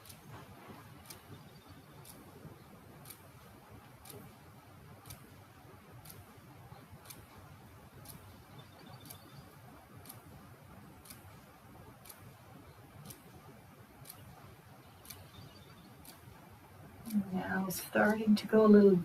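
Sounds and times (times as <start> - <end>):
clock ticking: 0.0 - 19.0
low room hiss: 0.0 - 19.0.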